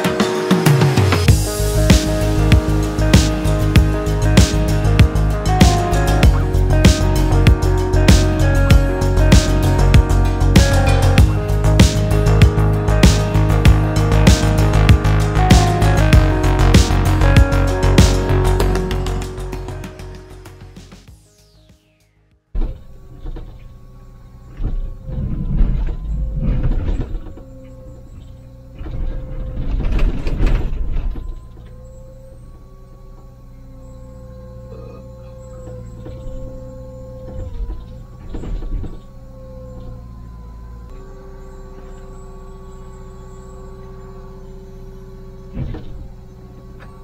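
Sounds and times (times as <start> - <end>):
excavator diesel engine running: 0.0 - 22.0, 22.7 - 47.0
background music: 0.0 - 22.6
hydraulic whine: 0.0 - 47.0.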